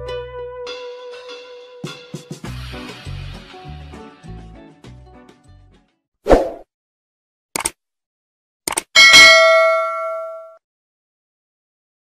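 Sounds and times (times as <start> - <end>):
thump sound effect: 6.3 - 6.6
short double clicks: 8.7 - 8.9
bell-like ding: 9.0 - 10.6.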